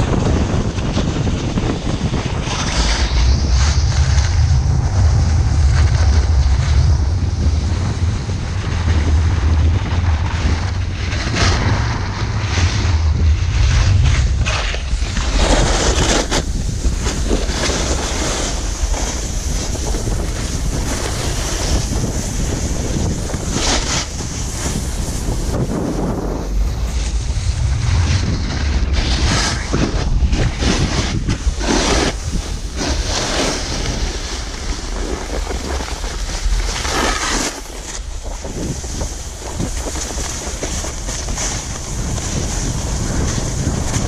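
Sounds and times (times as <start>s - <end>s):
snowboard edges scraping snow: 0.0s - 44.0s
wind buffeting microphone: 0.0s - 44.0s.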